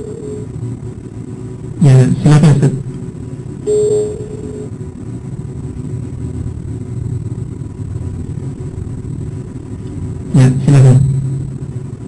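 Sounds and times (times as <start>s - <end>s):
brief steady tone: 0.0s - 0.5s, 3.6s - 4.8s
low rumble of background noise: 0.0s - 12.0s.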